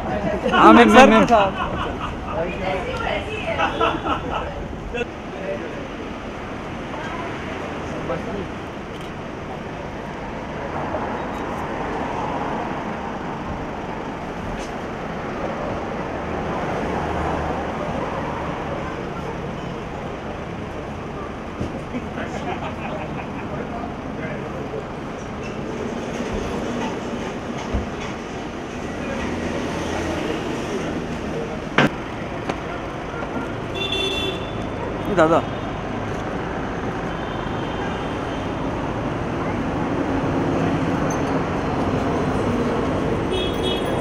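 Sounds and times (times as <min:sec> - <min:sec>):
indistinct crowd voices: 0:00.0 - 0:44.0
street noise: 0:00.0 - 0:44.0.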